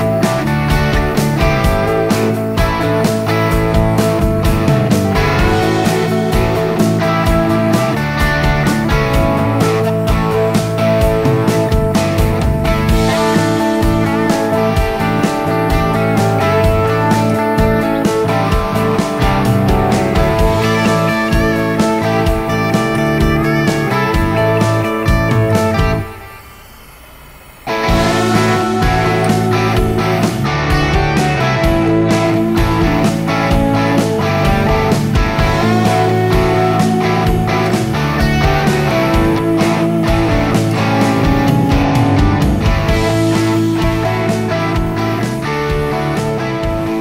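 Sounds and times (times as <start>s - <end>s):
music with guitar and beat: 0.0s - 26.5s, 27.6s - 47.0s.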